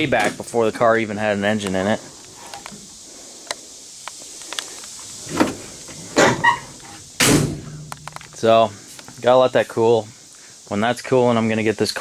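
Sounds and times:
car door squeak: 6.2s - 7.0s
car door shutting with thump: 7.2s - 7.8s.

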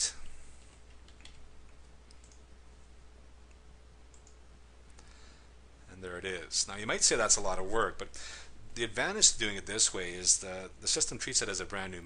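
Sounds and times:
low steady hum: 0.0s - 12.0s
mouse clicks: 0.6s - 2.4s, 3.5s - 4.4s
keyboard keystrokes: 0.9s - 1.4s.

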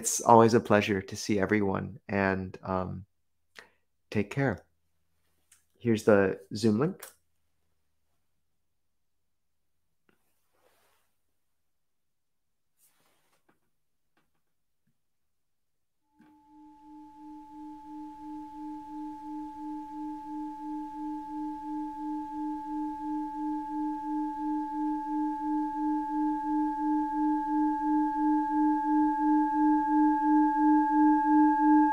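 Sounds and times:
low pulsing ringing tone: 16.1s - 31.9s.

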